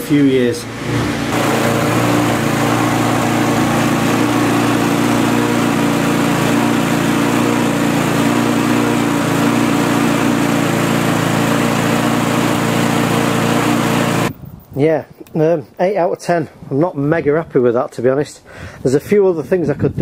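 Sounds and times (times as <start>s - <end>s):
lawnmower engine running unevenly: 0.9s - 14.3s.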